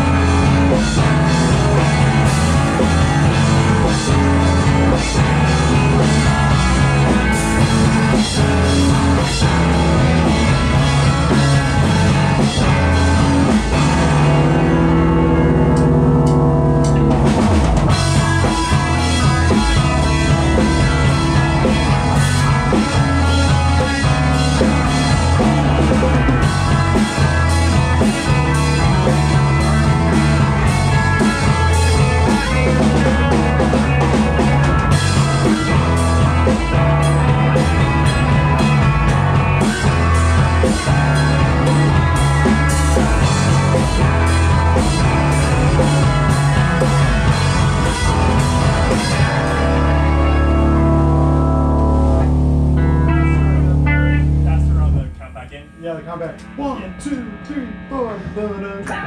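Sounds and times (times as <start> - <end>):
bass guitar: 0.0 - 59.0
drum kit: 0.0 - 59.0
electric guitars: 0.0 - 59.0.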